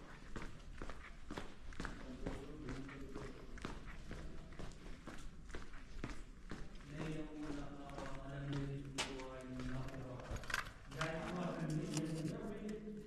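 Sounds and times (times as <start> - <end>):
footsteps on dusty floor: 0.0 - 12.8.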